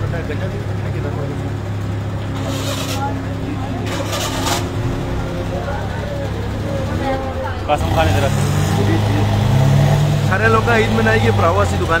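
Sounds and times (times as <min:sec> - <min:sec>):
street traffic noise: 0:00.0 - 0:12.0
vehicle engine humming: 0:00.0 - 0:12.0.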